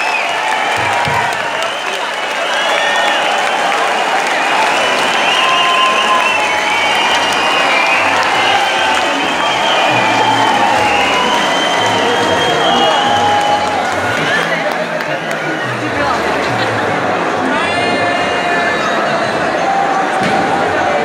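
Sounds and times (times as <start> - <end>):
audience applauding: 0.0 - 21.0
people cheering: 0.0 - 21.0.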